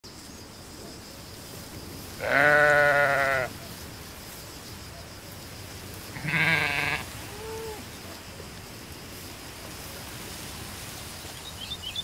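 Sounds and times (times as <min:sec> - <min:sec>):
sheep bleating: 0:02.2 - 0:03.5, 0:06.1 - 0:07.8.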